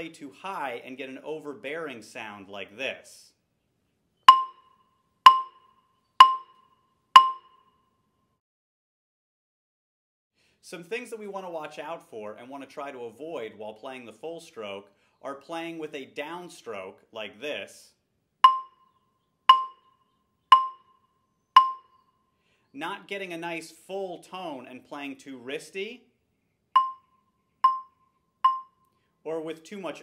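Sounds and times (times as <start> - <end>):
mallet striking wooden bar: 4.3 - 4.7, 5.3 - 6.6, 7.2 - 7.6, 18.4 - 18.8, 19.5 - 19.8, 20.5 - 20.9, 21.6 - 21.9, 26.8 - 27.0, 27.6 - 27.9, 28.5 - 28.7.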